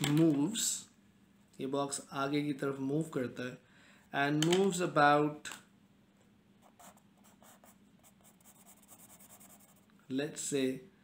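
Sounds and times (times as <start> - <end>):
marker pen scratching on paper: 6.6 - 9.9.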